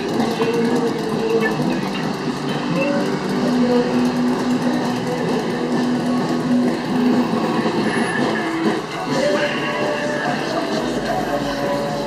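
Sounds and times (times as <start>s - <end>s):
busy open-air noise: 0.0s - 12.0s
car engine running: 0.0s - 12.0s.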